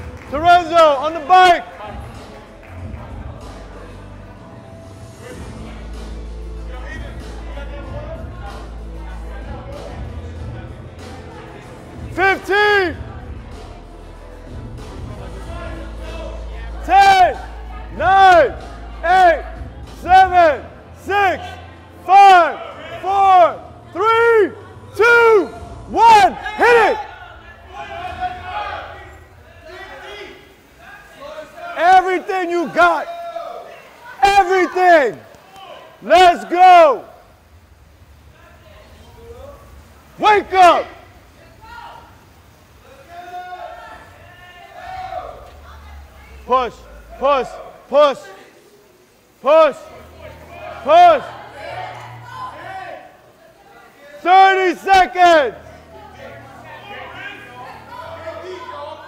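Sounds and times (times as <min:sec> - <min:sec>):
crowd cheering: 0:00.0 - 0:04.6, 0:15.2 - 0:59.0
spectators shouting encouragement: 0:15.5 - 0:37.4, 0:39.6 - 0:59.0.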